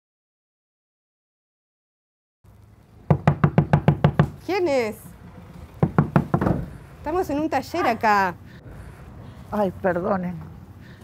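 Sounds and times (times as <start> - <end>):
knocking on a door: 3.1 - 4.4, 5.8 - 6.7.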